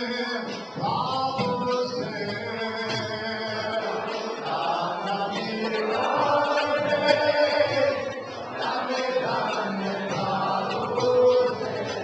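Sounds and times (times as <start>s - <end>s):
group chanting devotional song: 0.0s - 12.0s.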